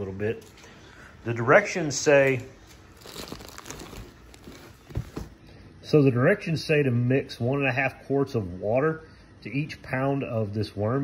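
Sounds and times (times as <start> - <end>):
plastic bag crinkling: 2.0 - 5.4.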